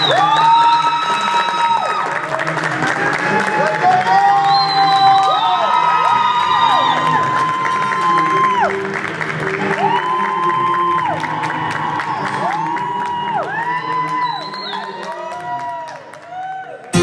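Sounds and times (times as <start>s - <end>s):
audience clapping: 0.0s - 17.0s
audience whooping: 0.0s - 17.0s.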